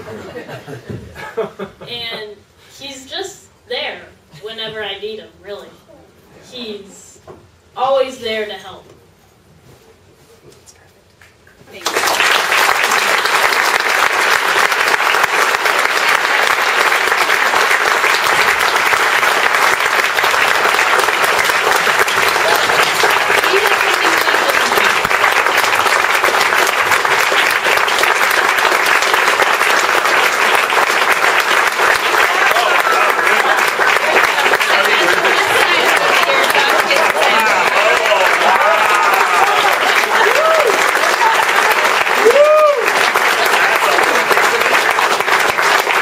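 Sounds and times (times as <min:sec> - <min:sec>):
audience applauding: 0:11.8 - 0:46.0.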